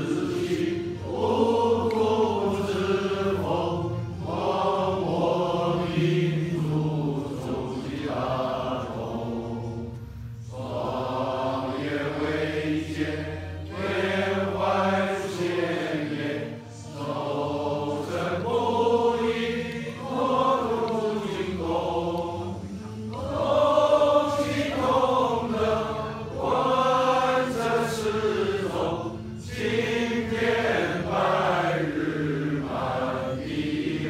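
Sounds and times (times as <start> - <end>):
men singing in unison: 0.0 - 34.0.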